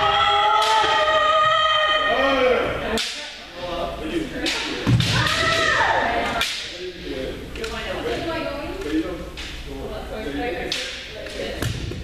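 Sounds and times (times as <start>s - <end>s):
people shouting: 0.0s - 2.9s, 5.0s - 6.4s.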